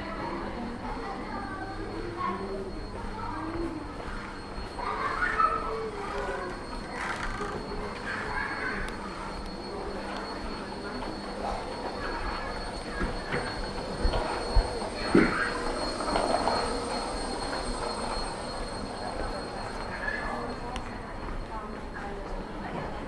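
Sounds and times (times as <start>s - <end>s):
high-pitched whine: 0.0s - 22.0s
scattered voices: 0.0s - 23.0s
footsteps: 9.3s - 18.7s.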